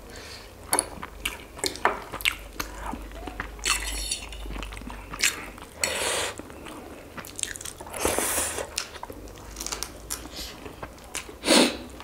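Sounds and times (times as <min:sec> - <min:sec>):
crunching and chewing food: 0:00.6 - 0:12.0.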